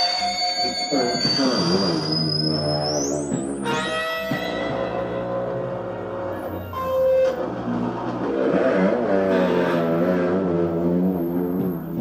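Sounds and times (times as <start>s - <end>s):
distorted electric guitar: 0.0s - 12.0s
rock music: 0.0s - 12.0s.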